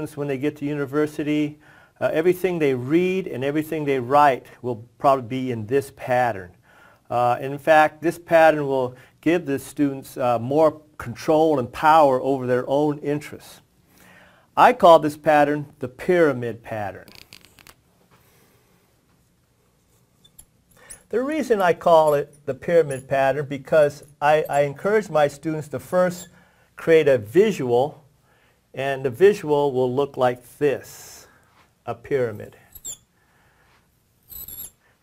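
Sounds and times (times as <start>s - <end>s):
marker squeaking on glass: 20.2s - 21.1s, 22.0s - 23.2s, 26.1s - 26.4s, 32.6s - 33.1s, 34.2s - 34.8s
marker rasping scrapes: 32.7s - 33.0s, 34.3s - 34.8s.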